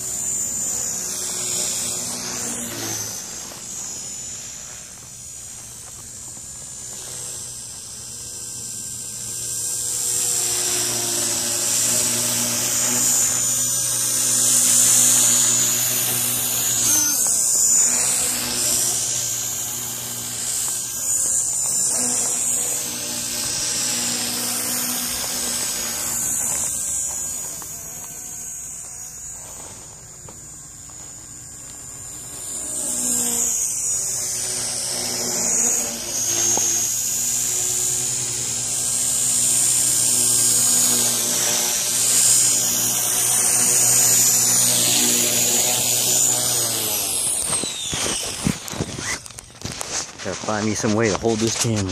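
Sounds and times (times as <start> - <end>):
rc helicopter motor whine: 0.0 - 51.9.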